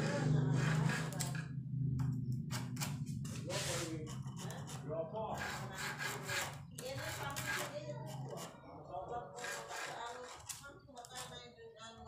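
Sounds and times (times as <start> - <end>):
hand tool scraping wood: 0.0 - 1.4, 2.5 - 4.8, 5.4 - 8.5, 9.4 - 10.6.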